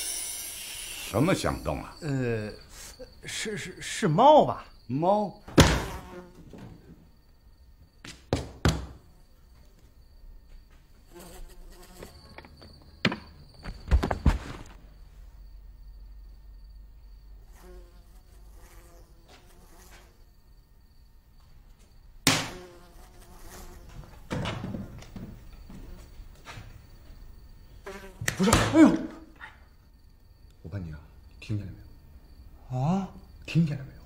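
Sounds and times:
housefly buzzing: 0:00.0 - 0:03.2, 0:05.6 - 0:06.6, 0:11.0 - 0:12.8, 0:17.4 - 0:20.4, 0:22.2 - 0:24.4, 0:27.4 - 0:28.6
sharp smack of a swat: 0:22.2 - 0:22.6.

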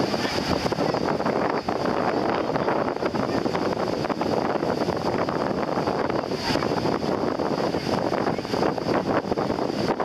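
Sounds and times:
surf breaking on beach: 0:00.0 - 0:10.0
wind buffeting microphone: 0:00.0 - 0:10.0.

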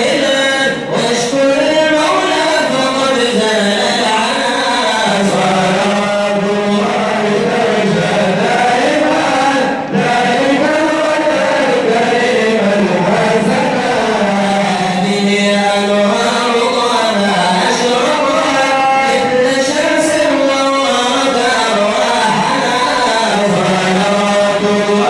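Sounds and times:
men chanting into a microphone: 0:00.0 - 0:25.0.

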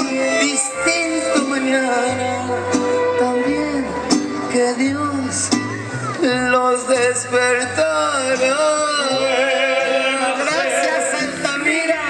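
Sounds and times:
mariachi band playing: 0:00.0 - 0:12.0
strummed guitars: 0:00.0 - 0:12.0.

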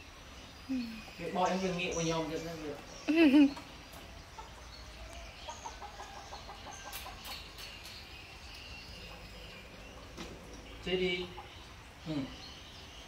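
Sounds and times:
bird chirps: 0:00.4 - 0:13.0
chicken clucking: 0:05.4 - 0:07.6.

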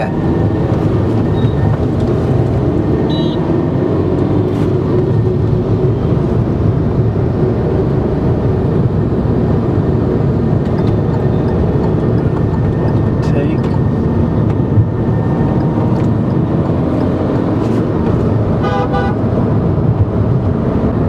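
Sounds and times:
car cabin road and engine noise: 0:00.0 - 0:21.0
vehicle horn blasts: 0:03.1 - 0:03.5, 0:18.6 - 0:19.2.

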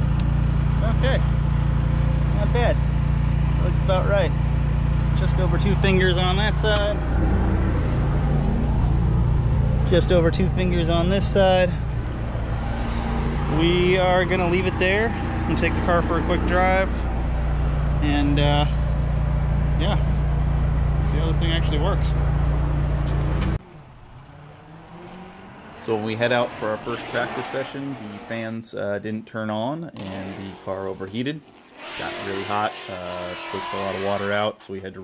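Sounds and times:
motor idling drone: 0:00.0 - 0:23.5
distant engine: 0:00.0 - 0:28.6, 0:30.0 - 0:34.8.

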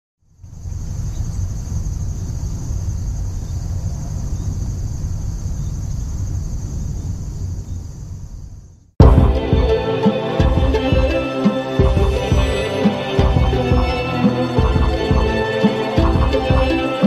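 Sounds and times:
crickets chirring: 0:00.2 - 0:08.9.

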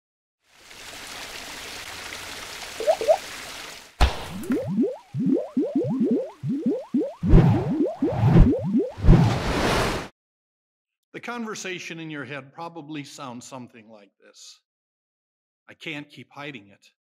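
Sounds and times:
short rising bloops: 0:02.8 - 0:03.2, 0:04.3 - 0:09.4.

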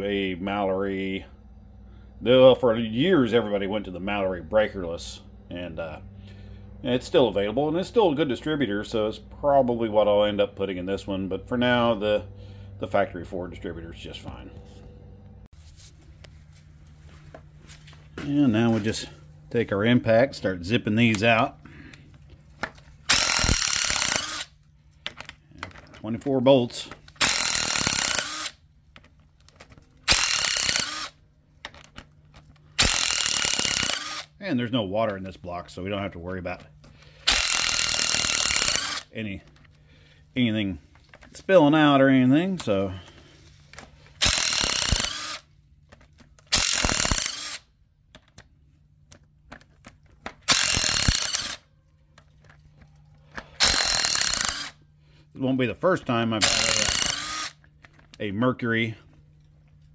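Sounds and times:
impact wrench zipping bolts: 0:22.6 - 0:24.5, 0:26.8 - 0:29.1, 0:30.0 - 0:31.2, 0:32.7 - 0:34.3, 0:37.2 - 0:39.1, 0:44.2 - 0:45.4, 0:46.0 - 0:47.6, 0:50.2 - 0:51.6, 0:53.4 - 0:54.8, 0:56.4 - 0:57.7.

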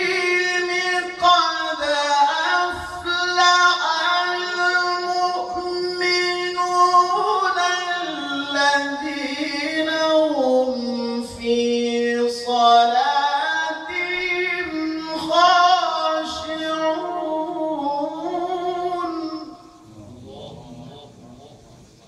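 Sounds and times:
man reciting melodically: 0:00.0 - 0:22.0.

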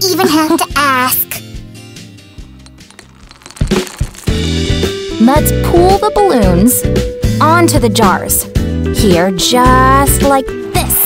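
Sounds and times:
soft background music: 0:00.0 - 0:02.9, 0:04.8 - 0:11.0.

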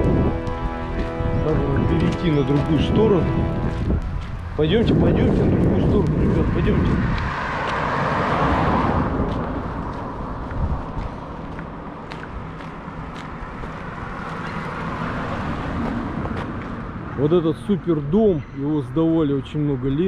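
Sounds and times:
steady traffic noise: 0:00.0 - 0:20.0
car driving past: 0:06.0 - 0:11.9, 0:13.4 - 0:17.2.

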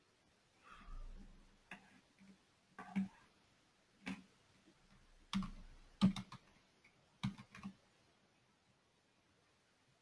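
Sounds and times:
typing on computer keyboard: 0:01.7 - 0:03.2, 0:05.3 - 0:06.5, 0:07.2 - 0:07.8.

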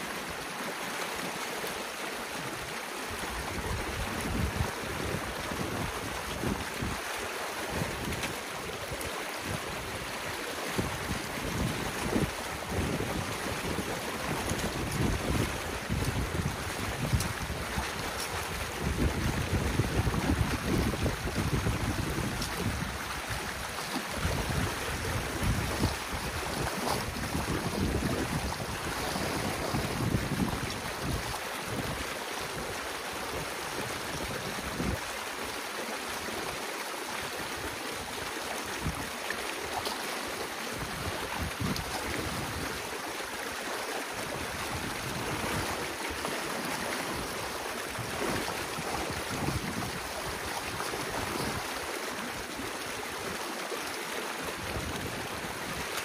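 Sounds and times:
water rushing through dam gap: 0:00.0 - 0:56.0
wind buffeting microphone: 0:03.4 - 0:07.1, 0:07.7 - 0:35.1, 0:40.8 - 0:42.8, 0:47.1 - 0:51.8.

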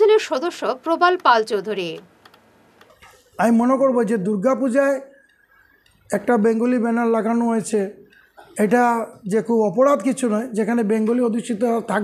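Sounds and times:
newsreader speaking: 0:00.0 - 0:02.2, 0:03.0 - 0:12.0
faint clicks: 0:01.2 - 0:03.2, 0:05.1 - 0:06.1.

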